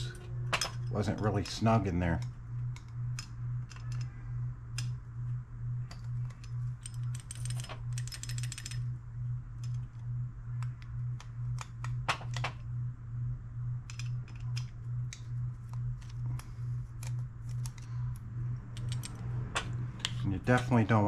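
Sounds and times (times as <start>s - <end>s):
pulsing low hum: 0.0s - 21.0s
screwdriver clicking and scraping: 13.9s - 18.0s.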